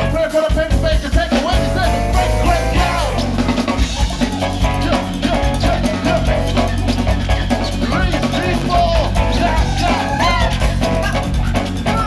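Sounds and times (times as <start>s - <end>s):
bass line: 0.0s - 12.0s
live band playing: 0.0s - 12.0s.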